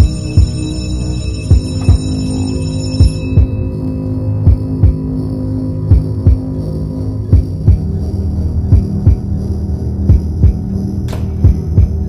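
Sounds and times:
low drone: 0:00.0 - 0:12.0
heartbeat-like double thump: 0:10.1 - 0:12.0.

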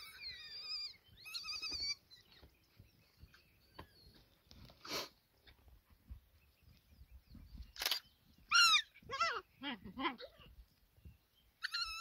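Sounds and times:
hyena cub squealing: 0:00.0 - 0:02.3, 0:07.8 - 0:09.5, 0:11.6 - 0:12.0.

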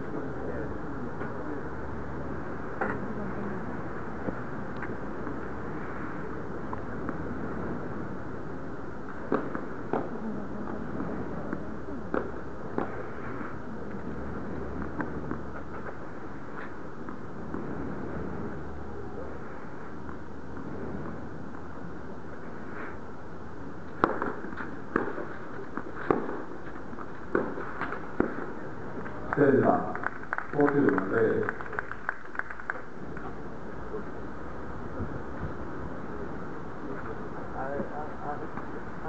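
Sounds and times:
indoor arena hum: 0:00.0 - 0:39.0
tennis ball struck by rackets: 0:09.3 - 0:10.1, 0:24.0 - 0:26.4.

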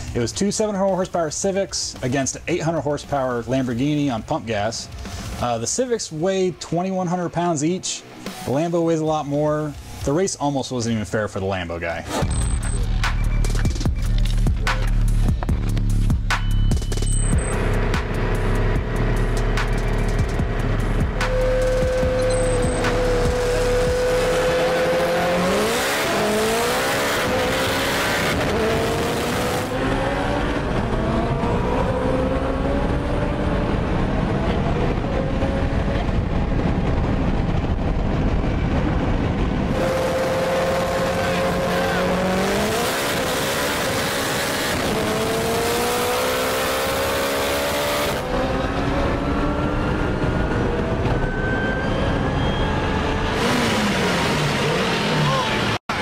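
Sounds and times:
car engine at full throttle: 0:04.9 - 0:05.4, 0:12.1 - 0:56.0.

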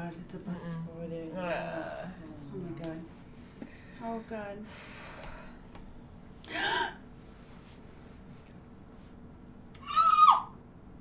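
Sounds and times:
woman shrieking: 0:09.8 - 0:10.6.

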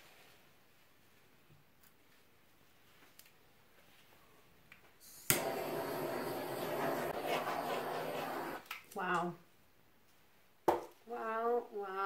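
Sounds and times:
torch hissing: 0:05.0 - 0:08.7
torch igniting click: 0:05.1 - 0:07.0.

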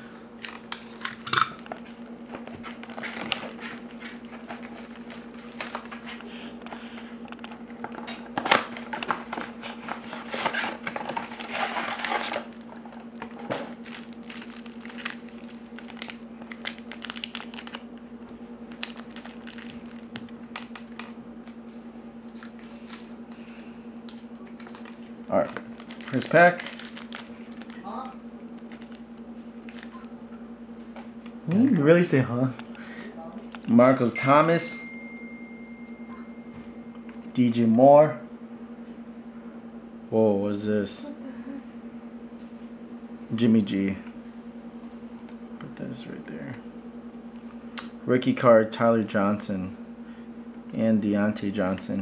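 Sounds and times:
steady low hum: 0:00.0 - 0:52.0
plastic and foil crinkling: 0:00.5 - 0:06.2, 0:06.8 - 0:17.9, 0:18.7 - 0:21.1, 0:22.2 - 0:30.0.

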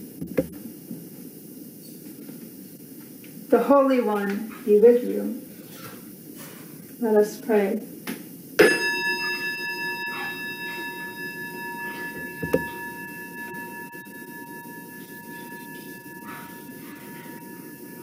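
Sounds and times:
bell-like chime ringing: 0:08.6 - 0:18.0
soft knock: 0:12.4 - 0:12.8.

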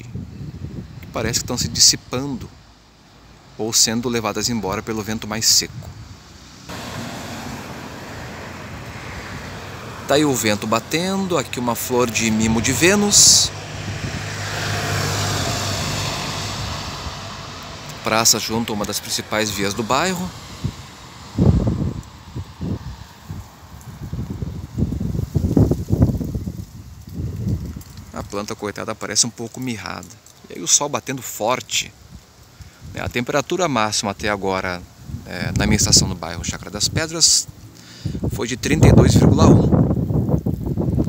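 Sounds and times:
wind rushing over microphone: 0:00.0 - 0:02.7, 0:04.5 - 0:28.6, 0:31.9 - 0:33.3, 0:34.1 - 0:41.0
car driving by: 0:06.4 - 0:23.8.

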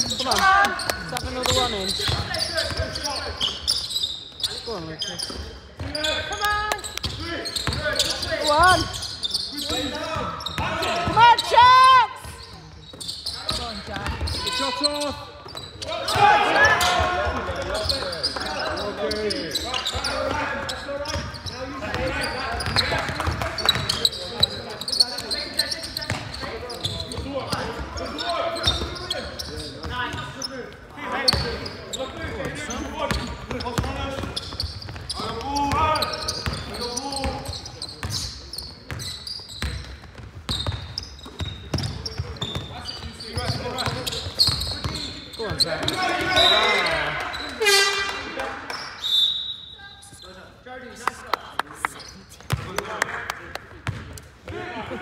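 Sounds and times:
basketball bouncing on wooden court: 0:00.0 - 0:03.0, 0:06.9 - 0:09.0, 0:12.2 - 0:14.5, 0:19.8 - 0:25.4, 0:26.0 - 0:28.0, 0:31.3 - 0:31.6, 0:32.4 - 0:46.3, 0:52.4 - 0:52.8, 0:53.8 - 0:54.2.

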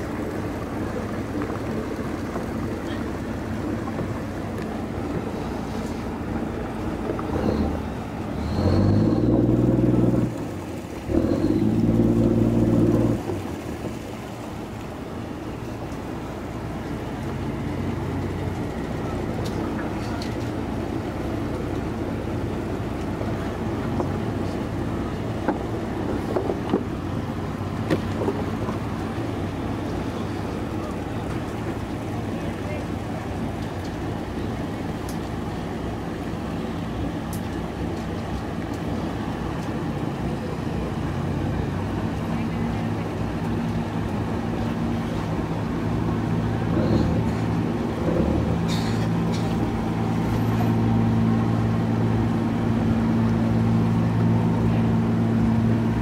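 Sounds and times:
boat engine humming: 0:00.0 - 0:56.0.

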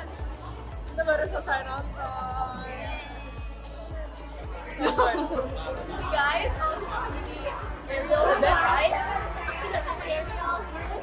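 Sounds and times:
background music: 0:00.0 - 0:11.0
women chattering: 0:00.0 - 0:11.0.

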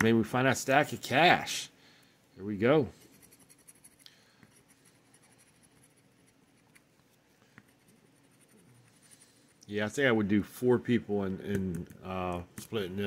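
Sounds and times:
scratching lottery ticket: 0:02.8 - 0:09.6.

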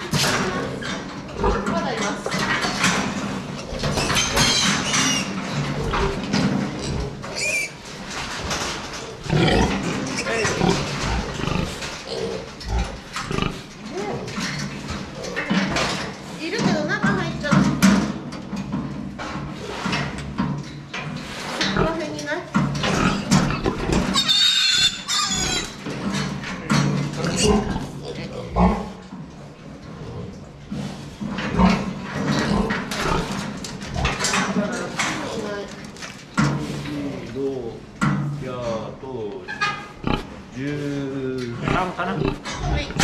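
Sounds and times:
piglets squealing: 0:04.0 - 0:05.4, 0:07.3 - 0:07.8, 0:24.1 - 0:25.8.

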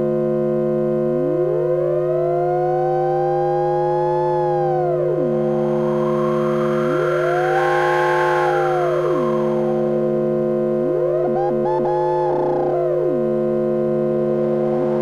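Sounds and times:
synthesizer drone tones: 0:00.0 - 0:15.0
gliding pure tone: 0:01.2 - 0:15.0
soft hiss: 0:05.3 - 0:10.2.

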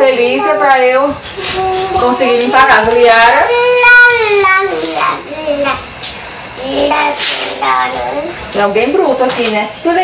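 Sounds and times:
child vocalizing in sing-song: 0:01.4 - 0:02.0, 0:03.5 - 0:05.9.

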